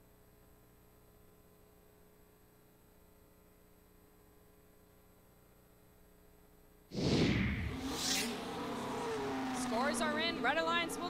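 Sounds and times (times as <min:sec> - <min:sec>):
race car whoosh: 0:07.0 - 0:11.0.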